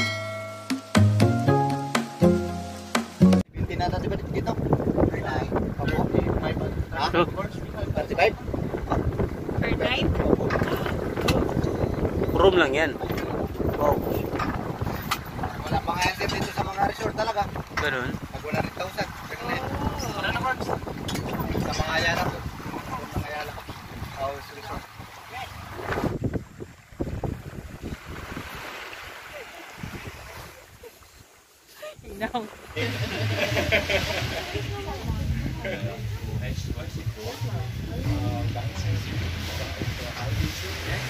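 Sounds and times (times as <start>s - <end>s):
motorboat running: 2.4s - 27.5s, 32.2s - 41.0s
wind buffeting microphone: 3.5s - 31.3s, 33.8s - 41.0s
voices: 31.7s - 41.0s.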